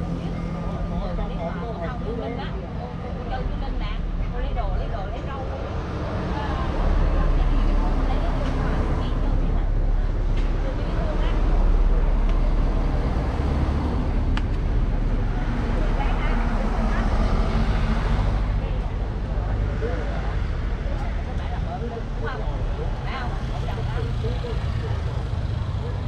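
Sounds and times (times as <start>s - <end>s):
buses driving past: 0.0s - 26.0s.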